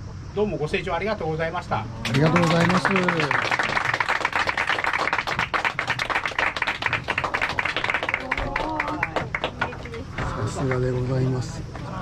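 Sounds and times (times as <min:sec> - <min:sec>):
people applauding: 0:02.0 - 0:12.0.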